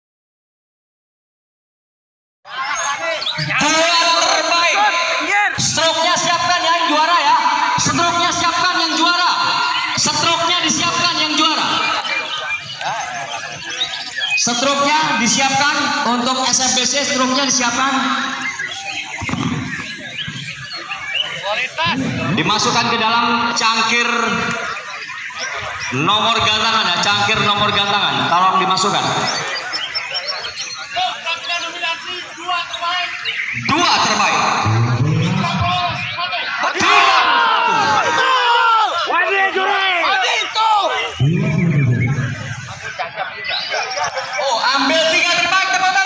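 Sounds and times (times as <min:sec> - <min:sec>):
crowd shouting and yelling: 0:02.5 - 0:46.0
songbirds chirping and singing: 0:02.5 - 0:46.0.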